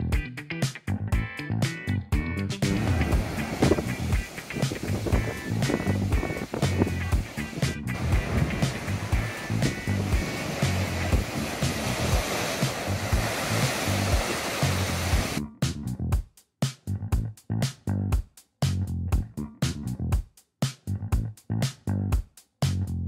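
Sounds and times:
music with steady beat: 0.0s - 23.0s
ocean surf crashing: 2.6s - 15.4s.

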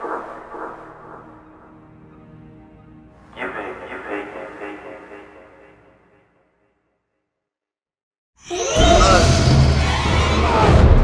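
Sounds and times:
horror film score: 0.0s - 6.6s, 8.4s - 11.0s.

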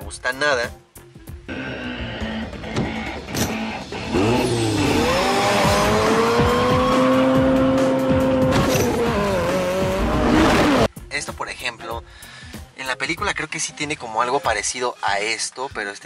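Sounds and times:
music: 0.0s - 16.0s
sports car engine revving: 1.5s - 10.9s.

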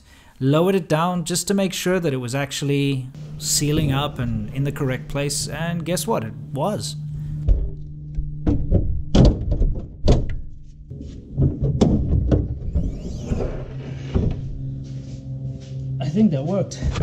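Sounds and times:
background music: 3.1s - 7.1s
car hood thunking shut: 8.4s - 10.4s.

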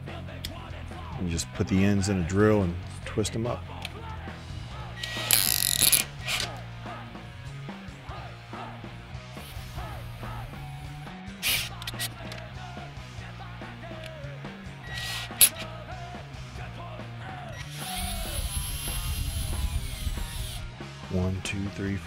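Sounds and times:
rock music with bass line: 0.0s - 22.0s
cordless drill motor whine: 14.8s - 15.6s, 17.6s - 20.7s.

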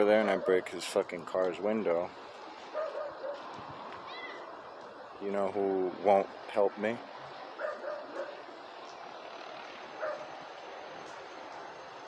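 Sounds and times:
faint outdoor background noise: 0.0s - 12.0s.

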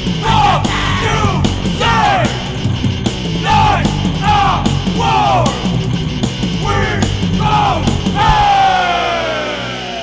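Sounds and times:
hardcore punk band playing: 0.0s - 9.8s
shouted vocals: 0.2s - 2.5s, 3.4s - 5.7s, 6.6s - 10.0s.

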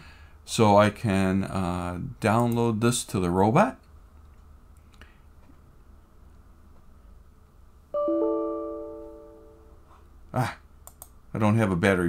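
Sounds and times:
computer alert chime: 8.0s - 9.7s.

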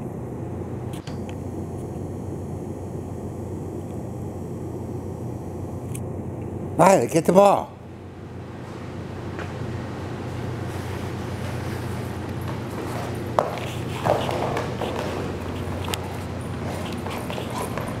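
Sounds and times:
steady low hum: 0.0s - 18.0s
dog paws running on rubber matting: 10.7s - 18.0s.

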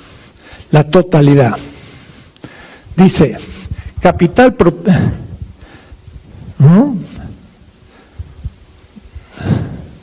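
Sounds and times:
breath into microphone: 0.0s - 0.7s, 1.6s - 4.0s, 4.9s - 10.0s.

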